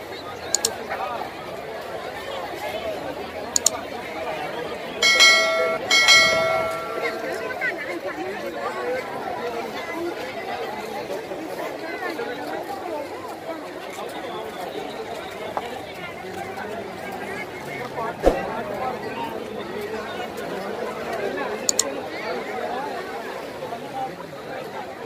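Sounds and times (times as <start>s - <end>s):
crowd babble: 0.0s - 25.0s
loud ringing tones: 5.0s - 7.6s.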